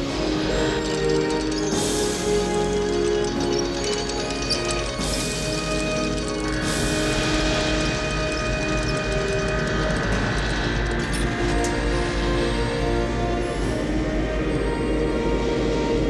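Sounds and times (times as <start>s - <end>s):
film score music with held notes: 0.0s - 16.0s.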